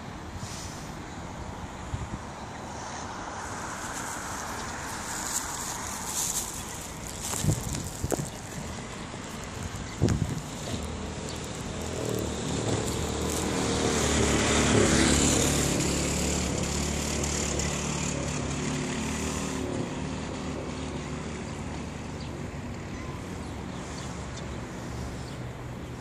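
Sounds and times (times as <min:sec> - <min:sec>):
vehicle engine passing by: 0:02.7 - 0:26.0.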